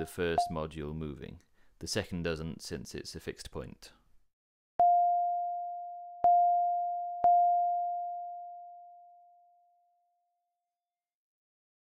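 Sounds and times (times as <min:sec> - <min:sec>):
synthesized ringing tone: 0:04.8 - 0:09.7.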